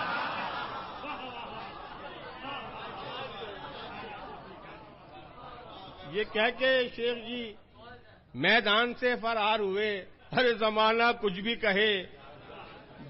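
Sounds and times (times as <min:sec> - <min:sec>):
audience laughter: 0:00.0 - 0:04.8.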